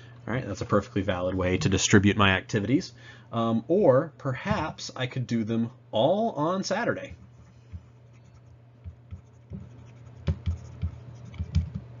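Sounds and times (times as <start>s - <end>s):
faint low hum: 0.0s - 12.0s
stylus tapping and scraping: 7.1s - 12.0s.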